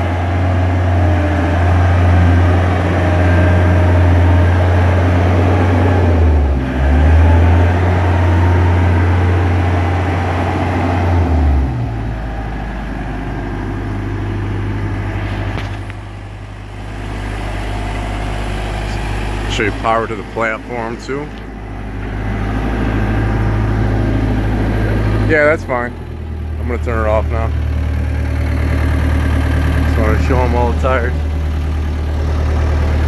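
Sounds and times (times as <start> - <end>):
boom lift engine running: 0.0 - 33.0.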